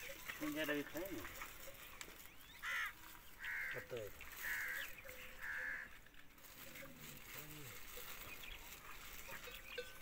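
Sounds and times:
crow cawing: 0:02.6 - 0:06.0.

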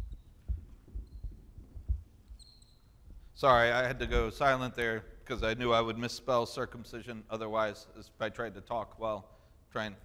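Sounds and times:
marker tip squeaking: 0:02.3 - 0:03.1.

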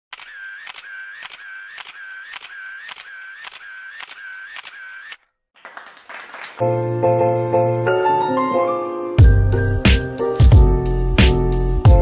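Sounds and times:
camera shutter clicking: 0:00.1 - 0:05.2.

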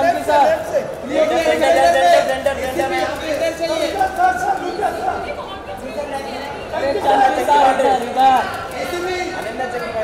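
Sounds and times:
crowd of photographers calling out: 0:00.0 - 0:10.0.

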